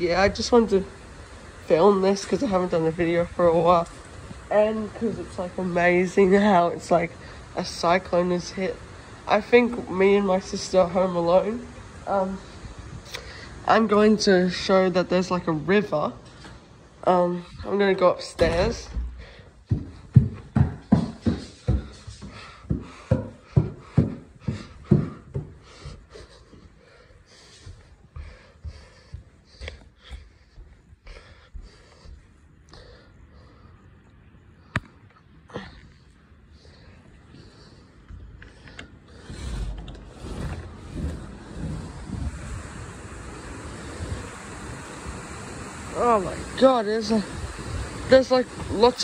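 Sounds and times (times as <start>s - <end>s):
wind buffeting microphone: 0.0s - 15.1s, 37.4s - 49.0s
heavy rain pouring: 0.0s - 20.2s, 39.1s - 49.0s
footsteps on wooden stairs: 17.7s - 33.0s.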